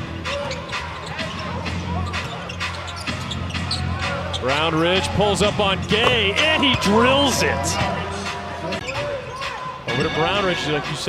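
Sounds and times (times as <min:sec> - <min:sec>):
basketball bouncing on hardwood: 0:06.0 - 0:06.4.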